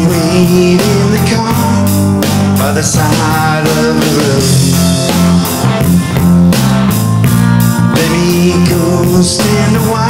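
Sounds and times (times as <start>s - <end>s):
electric guitar chords: 0.0s - 10.0s
steady drum beat: 0.0s - 10.0s.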